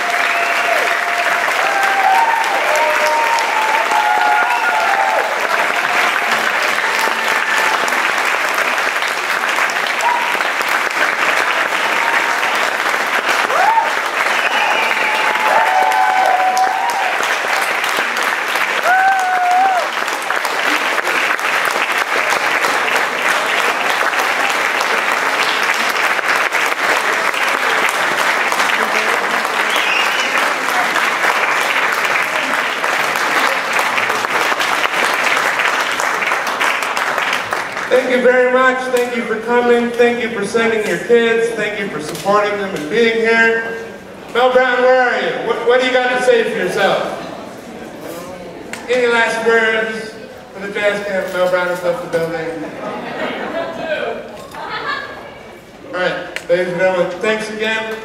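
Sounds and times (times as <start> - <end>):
voices cheering: 0.0 - 8.7, 9.8 - 10.7, 11.3 - 34.7
audience applauding: 0.0 - 39.9.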